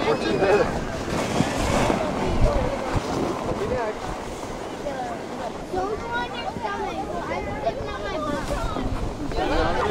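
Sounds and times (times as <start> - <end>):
faint voices: 0.0 - 9.9
snow tube sliding on snow: 0.0 - 9.9
wind rumbling on microphone: 0.0 - 9.9.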